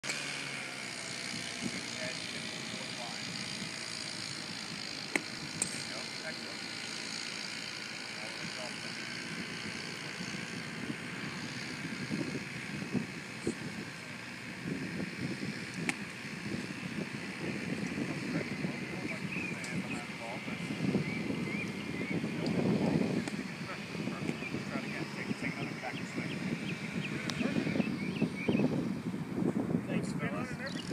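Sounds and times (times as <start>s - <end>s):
outdoor background hiss: 0.0s - 30.9s
golf club striking sand: 5.1s - 6.2s, 15.7s - 16.8s.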